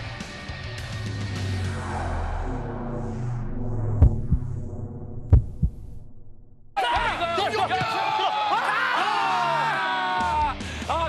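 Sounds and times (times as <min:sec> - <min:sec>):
low drone: 0:00.6 - 0:06.8
heartbeat thumps: 0:03.9 - 0:06.2.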